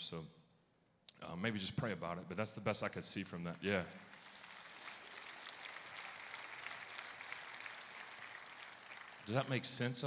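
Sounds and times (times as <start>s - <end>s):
light applause: 4.0s - 10.0s.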